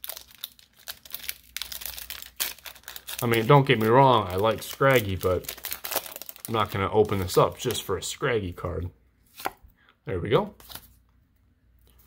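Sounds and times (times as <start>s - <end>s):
foil wrapper tearing and crinkling: 0.0s - 7.4s.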